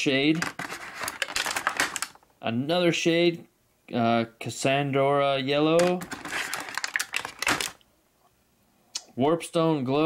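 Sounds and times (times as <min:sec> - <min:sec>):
plastic paint pots clicking: 0:00.4 - 0:02.2, 0:05.8 - 0:07.8.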